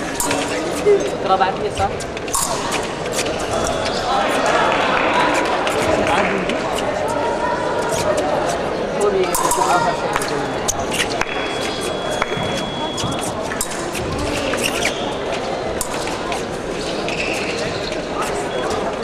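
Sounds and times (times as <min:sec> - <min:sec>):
crowd chatter in a hall: 0:00.0 - 0:19.0.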